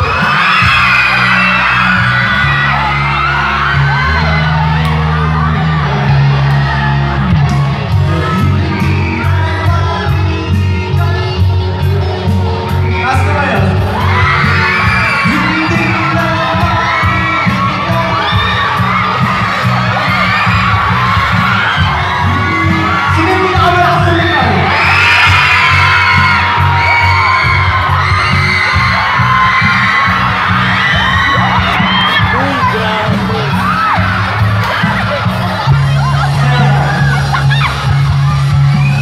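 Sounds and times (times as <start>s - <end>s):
crowd shouting and cheering: 0.0s - 39.0s
pop backing track with bass beat: 0.0s - 39.0s
man singing into microphone: 8.0s - 13.4s, 15.0s - 18.7s, 22.2s - 24.6s.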